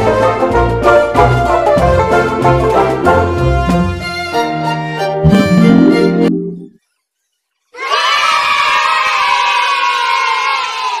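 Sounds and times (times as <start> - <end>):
children cheering: 7.8 - 11.0.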